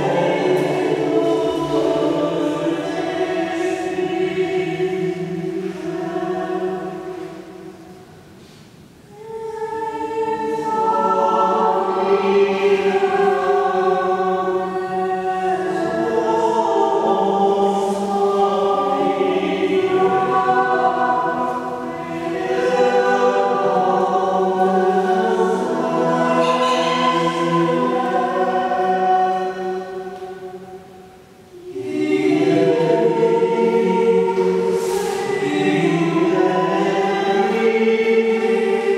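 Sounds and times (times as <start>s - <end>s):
voices singing in harmony: 0.0s - 8.2s, 9.0s - 38.9s.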